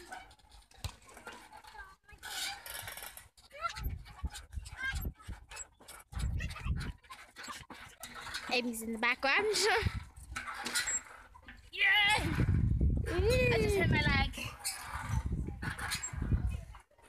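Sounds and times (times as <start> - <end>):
wind rumble: 11.8 - 16.7.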